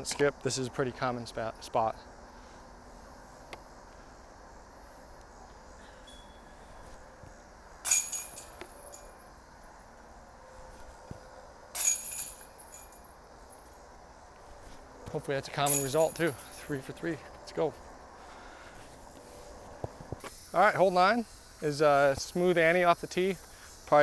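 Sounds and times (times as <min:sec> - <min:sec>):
metallic chain rattle and jingle: 0:07.8 - 0:09.2, 0:11.7 - 0:13.8, 0:15.6 - 0:16.8.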